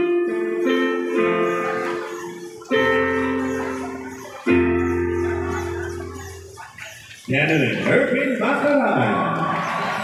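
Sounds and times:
electronic keyboard chord: 0.0s - 6.6s.

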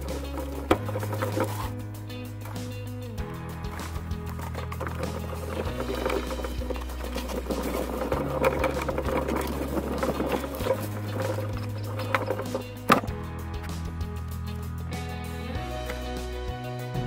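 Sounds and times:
background music with bass notes: 0.0s - 17.0s.

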